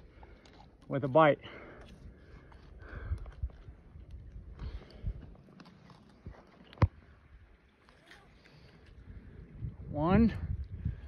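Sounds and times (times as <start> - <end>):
rope rustling: 1.8 - 6.9.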